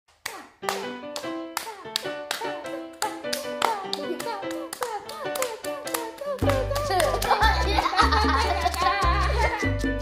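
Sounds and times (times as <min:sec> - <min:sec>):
hands clapping: 0:00.1 - 0:09.9
bright background tune: 0:00.6 - 0:10.0.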